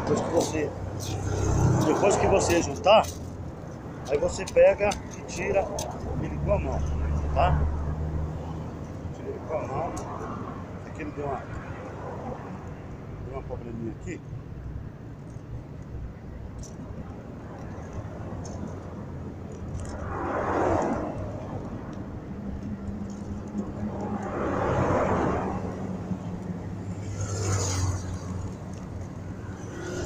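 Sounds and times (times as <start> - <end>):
cars passing: 0.0 - 30.0.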